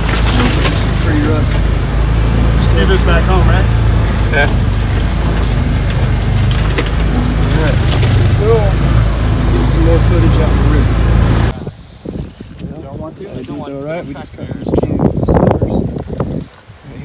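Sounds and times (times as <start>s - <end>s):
loud engine and road rumble: 0.0s - 12.2s.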